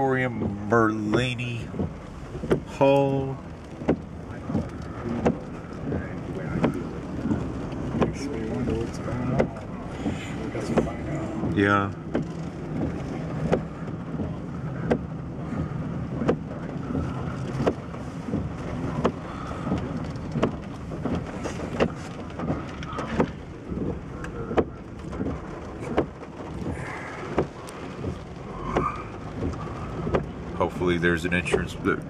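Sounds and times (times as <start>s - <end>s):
car engine and road rumble: 0.0s - 32.0s
raindrops tapping on car: 0.0s - 32.0s.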